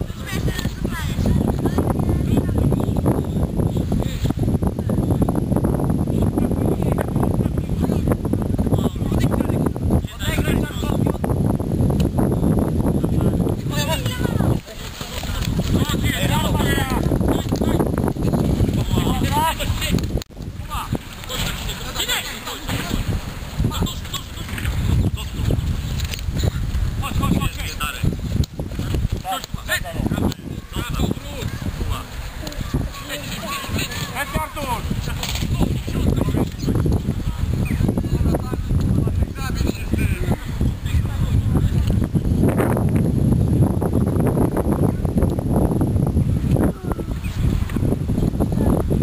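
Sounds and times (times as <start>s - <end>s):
wind buffeting microphone: 0.0s - 49.0s.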